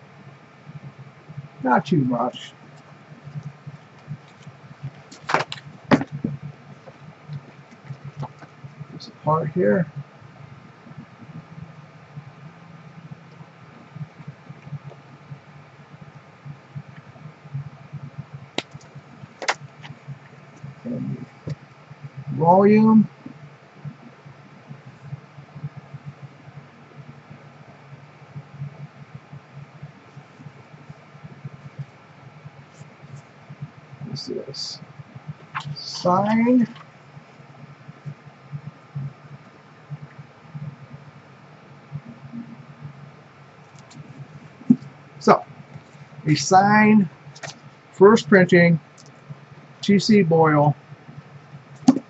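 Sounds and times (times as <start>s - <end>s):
low steady hum: 0.0s - 52.0s
book being handled: 2.8s - 8.6s, 35.4s - 37.0s
book cover clicks: 18.6s - 19.6s.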